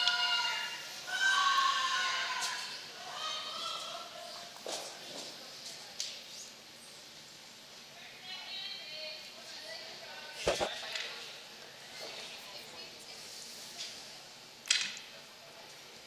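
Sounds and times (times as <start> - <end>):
curlers shouting sweeping calls: 0.0 - 4.5
arena sound: 10.4 - 10.8.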